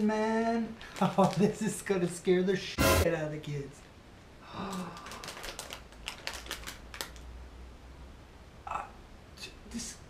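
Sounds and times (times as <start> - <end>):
plastic packaging crinkling: 0.8 - 1.8, 4.7 - 7.3.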